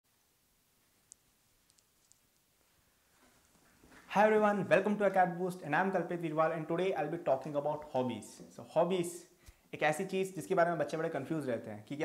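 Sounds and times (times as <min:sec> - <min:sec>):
faint high clicks: 0:01.0 - 0:02.5.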